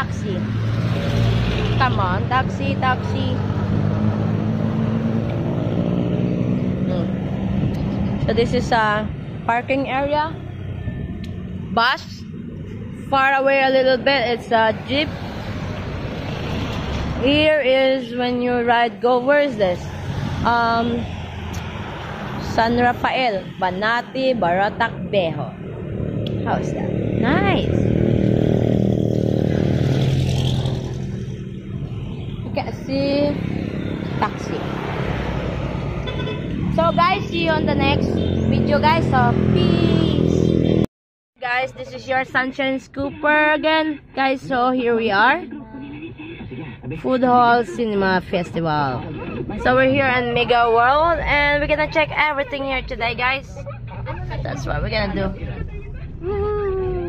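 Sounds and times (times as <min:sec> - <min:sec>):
vehicle engine humming: 0:00.0 - 0:57.0
vehicle engine running: 0:22.3 - 0:40.8.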